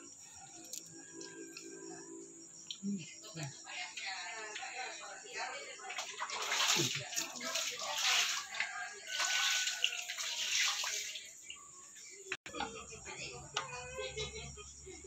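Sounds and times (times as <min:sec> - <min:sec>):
running water splashing: 0:05.4 - 0:11.6.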